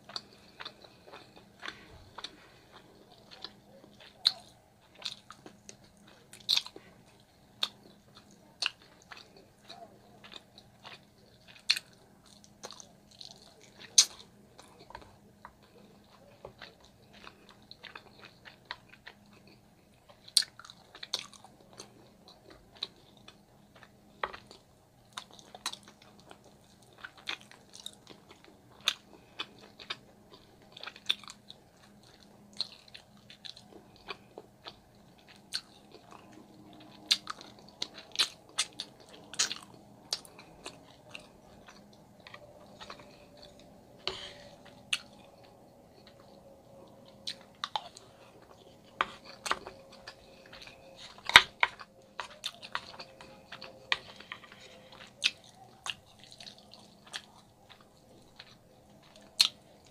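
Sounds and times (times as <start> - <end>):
chewing and lip-smacking: 0.0 - 59.9.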